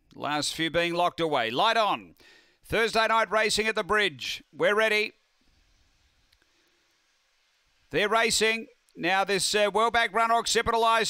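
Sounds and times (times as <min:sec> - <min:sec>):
faint background hiss: 0:00.0 - 0:11.0
man's voice: 0:02.7 - 0:05.1, 0:08.0 - 0:11.0.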